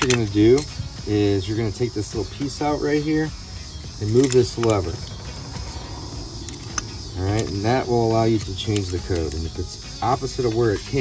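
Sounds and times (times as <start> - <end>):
lock box lever clicking: 0.0 - 0.9, 4.0 - 5.8, 6.4 - 9.6
faint background music: 0.0 - 11.0.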